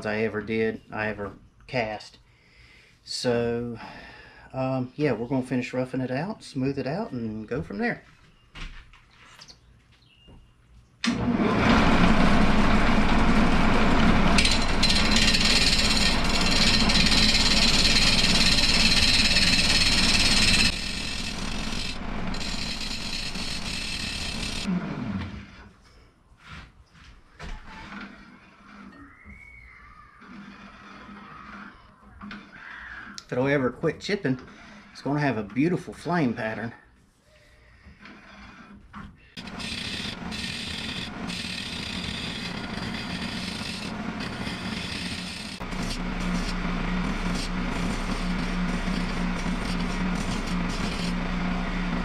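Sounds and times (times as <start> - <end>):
lathe gouge cutting wood: 11.1 - 24.7, 39.4 - 52.0
lathe motor winding down: 11.1 - 25.6, 39.4 - 52.0.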